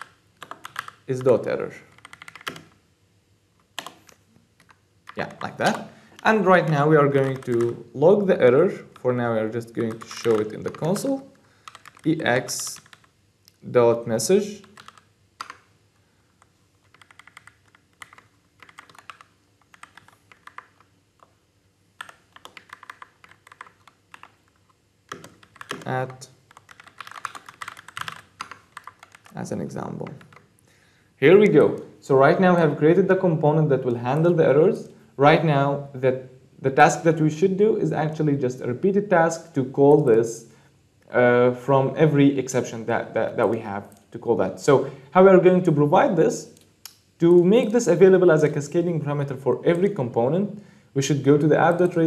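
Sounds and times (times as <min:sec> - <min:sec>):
computer keyboard typing: 0:00.0 - 0:02.8, 0:03.8 - 0:07.8, 0:08.8 - 0:13.1, 0:14.5 - 0:15.7, 0:16.4 - 0:21.4, 0:22.0 - 0:30.5, 0:51.6 - 0:52.0.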